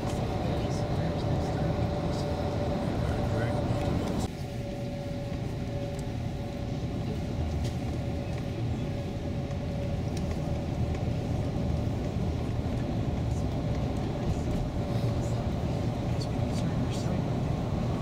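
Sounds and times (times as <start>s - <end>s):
bus engine and tyres rumbling: 0.0s - 18.0s.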